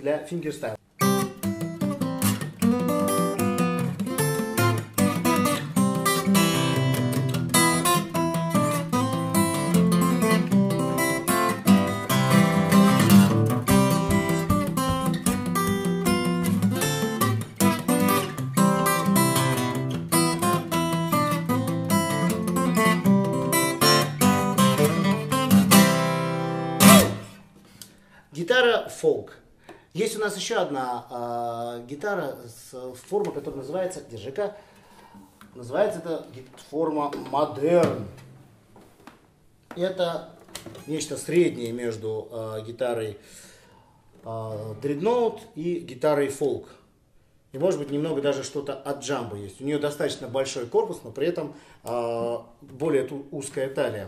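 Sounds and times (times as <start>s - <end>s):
fingerstyle acoustic guitar: 1.0s - 27.5s.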